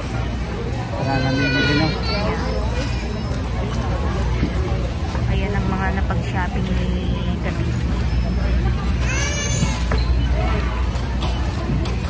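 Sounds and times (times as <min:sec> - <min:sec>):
chatter of shoppers: 0:00.0 - 0:12.0.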